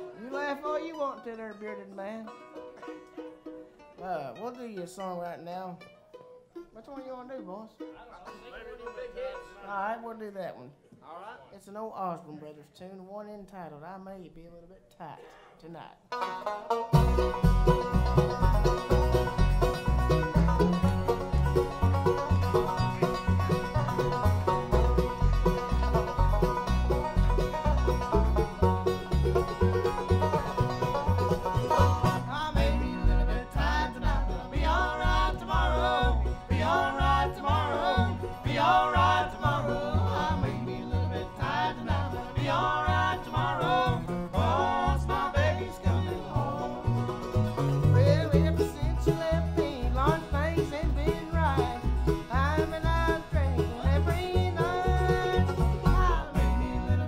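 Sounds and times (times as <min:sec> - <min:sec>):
banjo: 0:00.0 - 0:10.6, 0:15.1 - 0:57.0
bluegrass band playing: 0:00.0 - 0:10.6, 0:16.0 - 0:57.0
upright bass plucked: 0:16.2 - 0:57.0
people singing together: 0:32.0 - 0:49.5.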